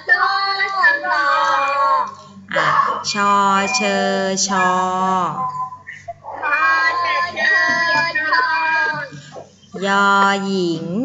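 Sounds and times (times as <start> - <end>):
children chanting in sing-song: 0.0 - 10.4.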